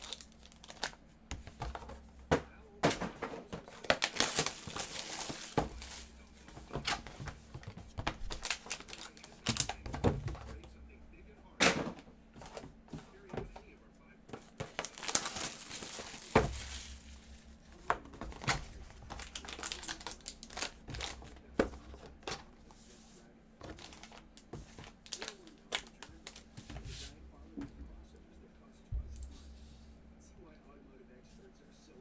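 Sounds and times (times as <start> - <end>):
foil packs crinkling: 0.0 - 1.0, 3.5 - 10.7, 14.3 - 22.5, 23.6 - 26.6
wrapping tearing: 0.0 - 1.0, 3.8 - 6.1, 8.3 - 9.8, 14.6 - 17.1, 19.1 - 21.3, 23.7 - 26.4
cardboard boxes being handled: 0.0 - 10.6.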